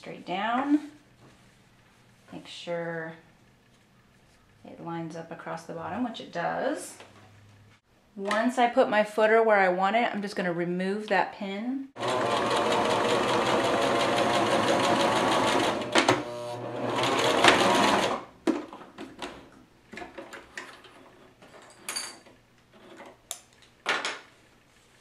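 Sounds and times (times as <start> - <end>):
sewing machine stitching: 12.0 - 18.3.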